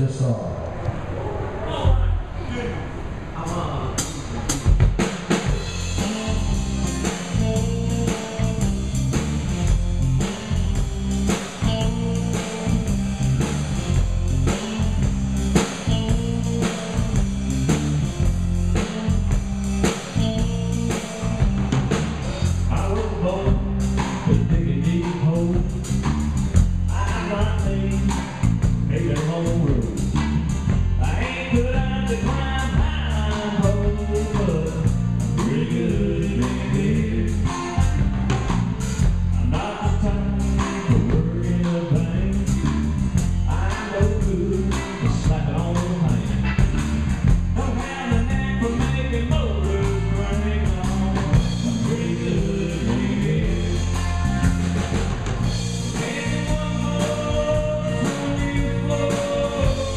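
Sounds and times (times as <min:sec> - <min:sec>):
bass line: 0:00.0 - 0:59.9
drum kit beat: 0:04.0 - 0:59.9
acoustic guitar: 0:04.7 - 0:59.9.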